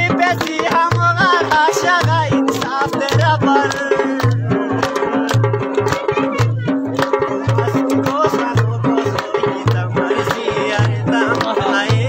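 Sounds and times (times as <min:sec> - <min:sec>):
drums beating a rhythm: 0:00.0 - 0:12.0
held melody line: 0:00.0 - 0:12.0
person singing: 0:00.0 - 0:12.0.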